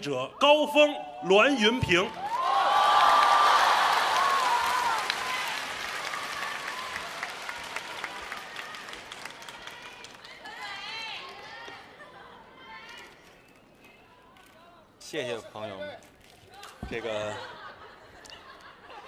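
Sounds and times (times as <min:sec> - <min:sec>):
audience applauding: 0:02.2 - 0:10.4.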